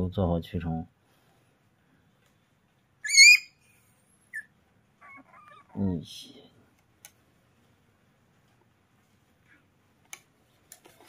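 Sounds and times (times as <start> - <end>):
puppy yelping: 3.0 - 3.7, 4.3 - 5.9.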